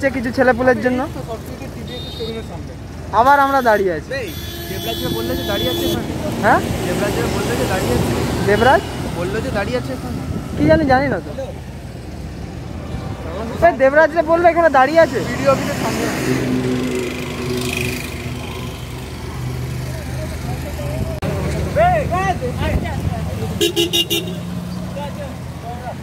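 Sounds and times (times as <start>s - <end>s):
men's voices: 0.0s - 26.0s
vehicle engines running: 0.0s - 26.0s
car horn honk: 1.9s - 2.6s, 3.3s - 6.1s, 23.6s - 24.5s.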